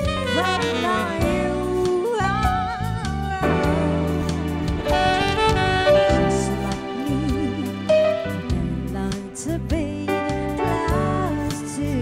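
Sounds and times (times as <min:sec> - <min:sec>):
live band playing pop ballad: 0:00.0 - 0:12.0.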